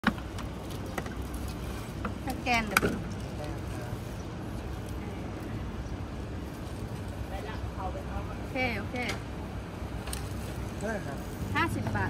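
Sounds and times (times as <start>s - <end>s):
street ambience rumble: 0.0s - 12.0s.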